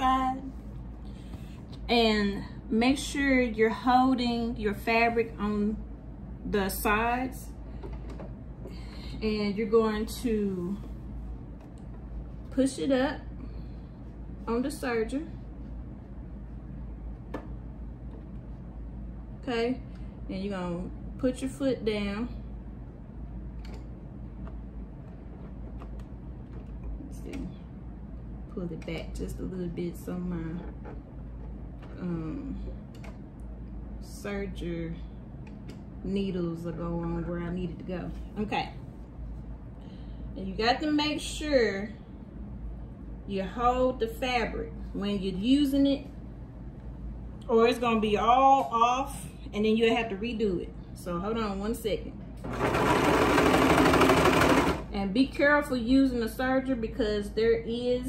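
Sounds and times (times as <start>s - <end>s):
steady low hum: 0.0s - 58.0s
overlock sewing machine running: 52.4s - 55.0s.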